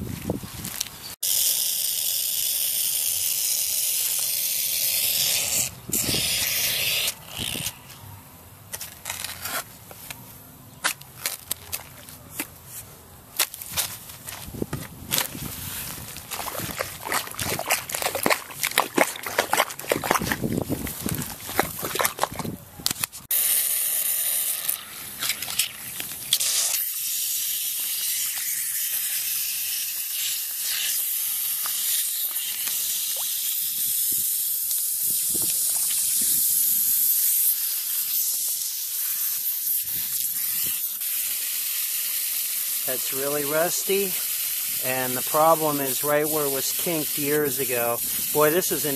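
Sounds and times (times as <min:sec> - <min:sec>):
shovel chopping into soil: 0:13.4 - 0:23.2
water hissing from pipe leak: 0:23.4 - 0:48.9.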